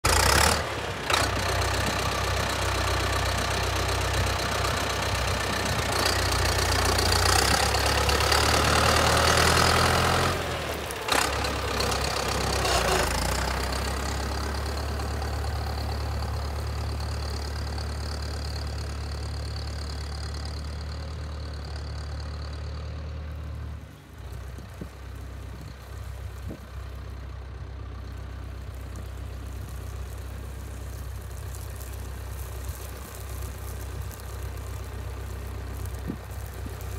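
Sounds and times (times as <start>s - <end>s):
tractor diesel engine running: 0.0s - 36.9s.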